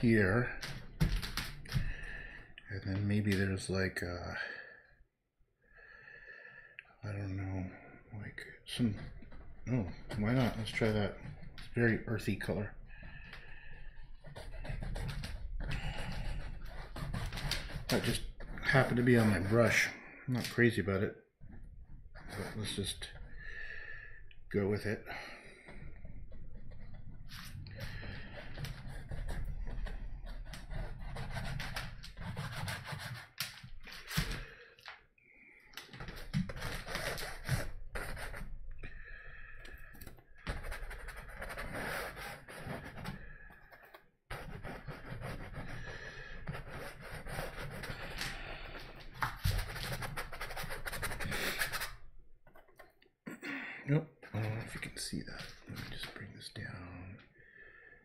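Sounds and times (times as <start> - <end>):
paintbrush scrubbing canvas: 13.4 - 19.9, 26.2 - 33.4, 40.5 - 52.0.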